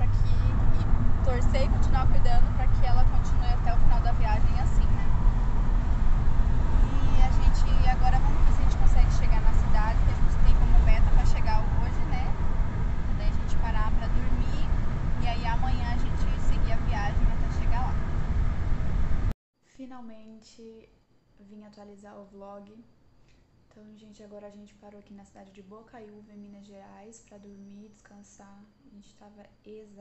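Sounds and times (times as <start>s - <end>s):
woman speaking: 0.0s - 5.2s, 6.8s - 12.4s, 13.2s - 18.0s, 19.7s - 22.9s, 23.7s - 30.0s
car cabin road and engine rumble: 0.0s - 19.3s.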